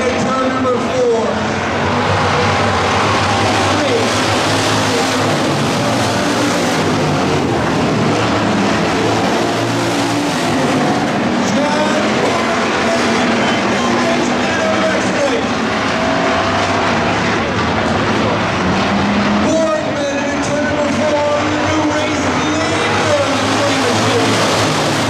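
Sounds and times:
race car engines droning: 0.0 - 25.0.

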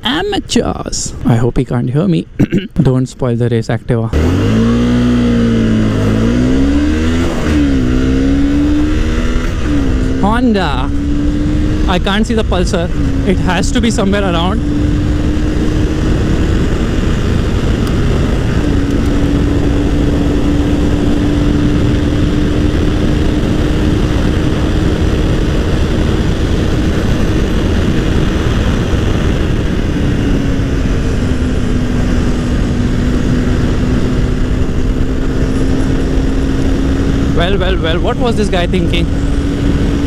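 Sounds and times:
motorcycle engine cruising: 4.1 - 40.0
wind rush on microphone: 4.2 - 40.0.

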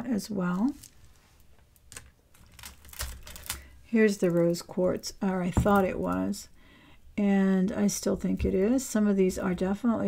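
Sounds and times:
jewelry clicking and clattering: 1.7 - 6.4.

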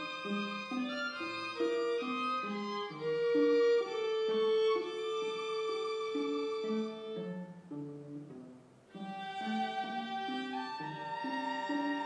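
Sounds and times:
string trio playing: 0.0 - 12.0.

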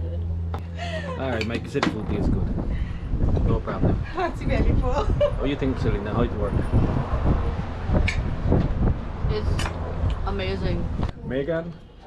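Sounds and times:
wind buffeting microphone: 1.4 - 11.7.

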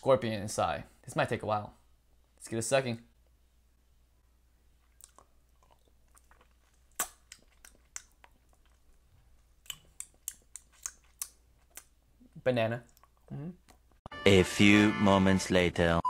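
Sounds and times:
sucking lollipop mouth sounds: 4.8 - 8.8, 9.6 - 12.0.

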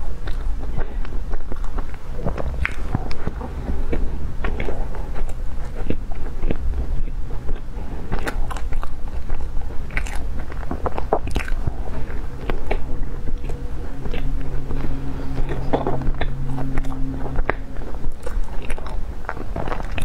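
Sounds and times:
chewing crunchy toast: 0.0 - 20.0.

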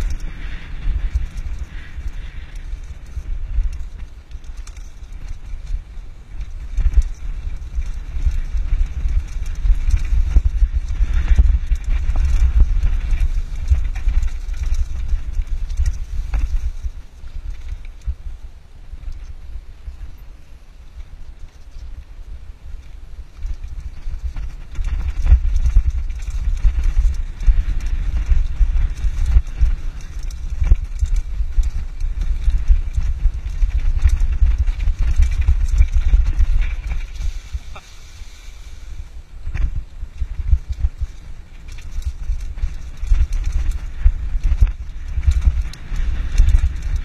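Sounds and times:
bike knocking and rattling: 0.0 - 47.0
wind buffeting microphone: 0.0 - 47.0.

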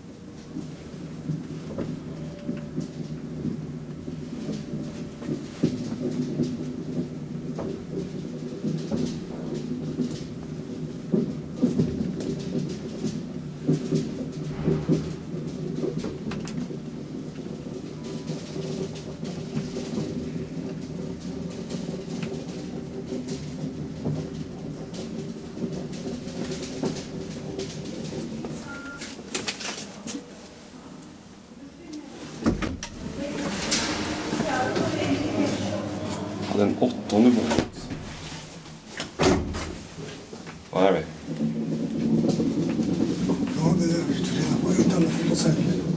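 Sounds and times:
elevator machine hum: 0.0 - 29.8, 32.1 - 45.9
elevator stopping clunk: 14.4 - 17.0, 32.4 - 39.9
clattering: 32.5 - 40.3.

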